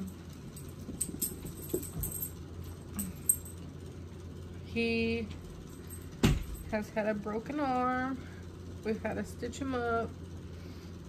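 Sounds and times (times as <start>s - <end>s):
metallic jingles: 0.0s - 3.6s
low hum: 0.0s - 8.8s.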